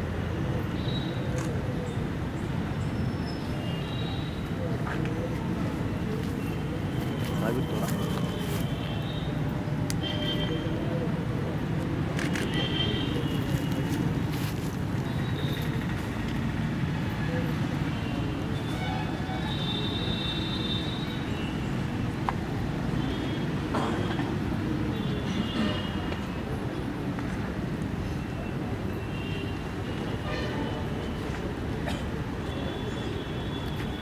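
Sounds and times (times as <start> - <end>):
road traffic engine rumble: 0.0 - 34.0.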